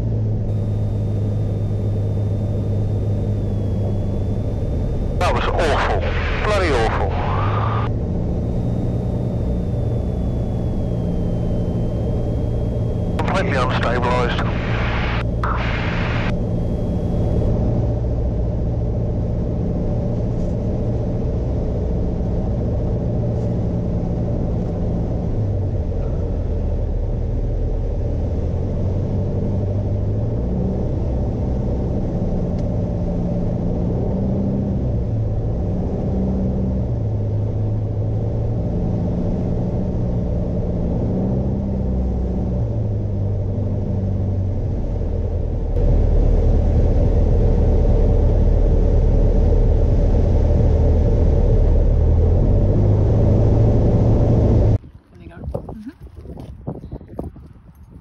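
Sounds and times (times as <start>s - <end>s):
aircraft engine droning: 0.0s - 34.0s, 36.6s - 54.8s
voice bursts: 5.1s - 7.9s.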